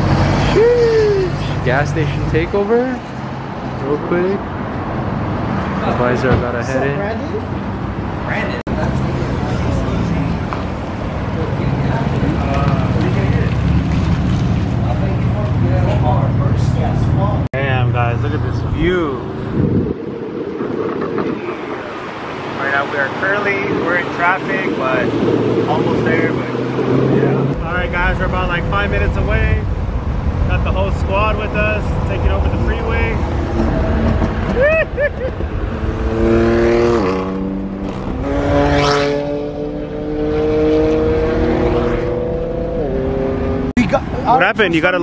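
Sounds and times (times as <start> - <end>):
road noise: 0.0 - 45.0
wind rushing over microphone: 18.3 - 44.3.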